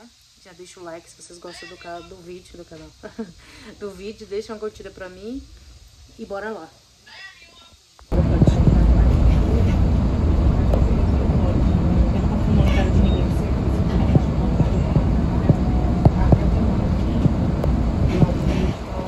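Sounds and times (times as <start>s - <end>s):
bus engine and road rumble: 8.1s - 19.0s.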